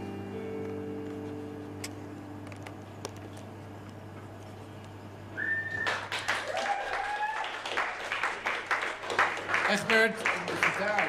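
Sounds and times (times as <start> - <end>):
audience whistling: 5.3 - 7.7
crowd applause: 5.4 - 11.0.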